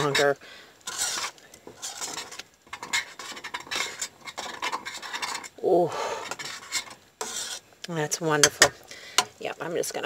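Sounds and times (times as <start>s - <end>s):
metal spoon stirring in pot: 0.0s - 10.0s.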